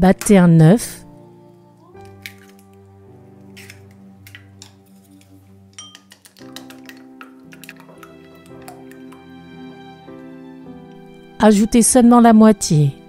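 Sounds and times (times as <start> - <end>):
soft background music: 0.0 - 13.0
egg beaten with chopsticks in bowl: 3.5 - 9.2.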